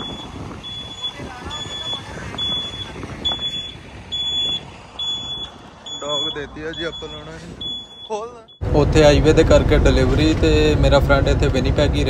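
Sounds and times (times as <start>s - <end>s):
high-pitched warning beeps: 0.0s - 8.6s
engine rumble: 0.0s - 12.0s.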